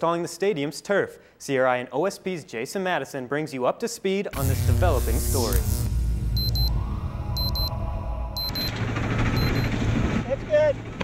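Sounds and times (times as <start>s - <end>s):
deep bass drone: 4.4s - 10.0s
short high electronic beeps: 6.4s - 6.8s, 7.4s - 7.7s, 8.4s - 8.8s, 9.4s - 9.8s.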